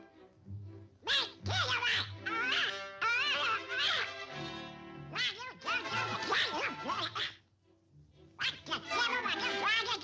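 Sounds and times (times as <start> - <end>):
background music: 0.0 - 10.0
cartoon duck voice quacking: 1.0 - 4.4, 5.1 - 7.4, 8.4 - 10.0.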